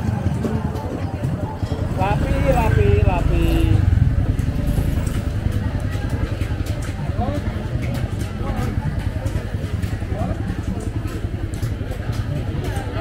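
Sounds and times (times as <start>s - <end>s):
motorbike engine running: 0.0s - 13.0s
people talking: 0.0s - 13.0s.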